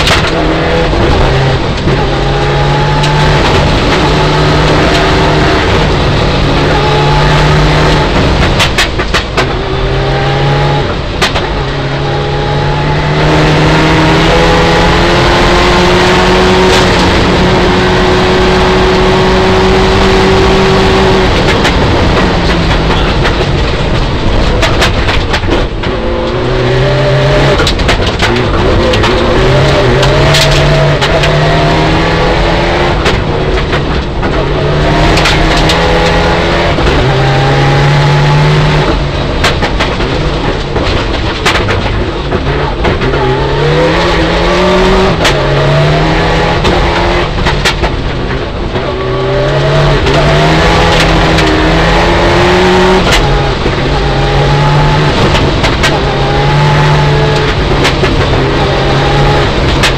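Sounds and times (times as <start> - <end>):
rally car engine revving: 0.0 - 59.9.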